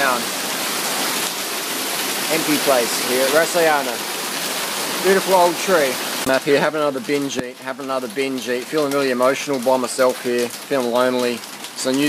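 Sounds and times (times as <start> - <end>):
heavy rain on roof and foliage: 0.0 - 12.0.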